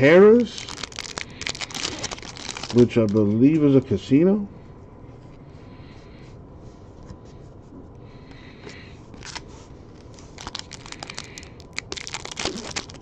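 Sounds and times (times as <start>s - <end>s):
foil wrapper crinkling and tearing: 0.0s - 3.3s, 9.2s - 9.4s, 10.3s - 13.0s.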